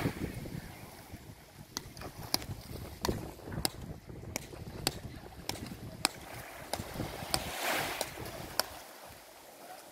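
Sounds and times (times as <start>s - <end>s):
wind rumble on microphone: 0.0s - 8.7s
paddles striking ball: 1.7s - 8.8s.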